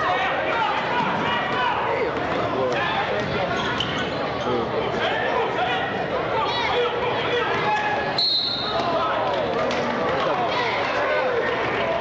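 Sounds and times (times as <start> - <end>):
crowd talking and calling out: 0.0 - 12.0
referee's whistle: 8.2 - 8.8.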